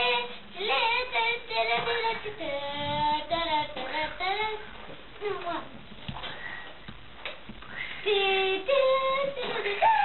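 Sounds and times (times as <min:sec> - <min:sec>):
child singing wordless tune: 0:00.0 - 0:05.8, 0:08.0 - 0:09.9.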